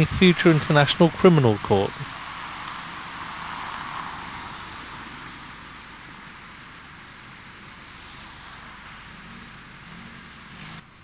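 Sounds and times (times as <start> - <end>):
rushing vehicle noise: 0.0 - 11.0.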